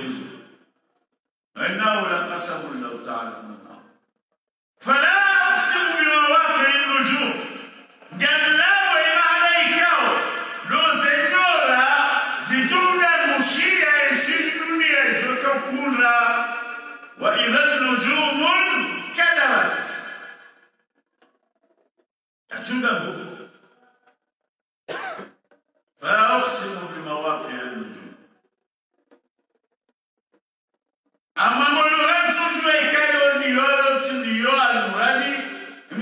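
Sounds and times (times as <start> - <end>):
man speaking: 0.0 - 0.4, 1.6 - 3.8, 4.8 - 20.3, 22.5 - 23.4, 26.0 - 28.2, 31.4 - 36.0
man clearing throat: 24.9 - 25.4.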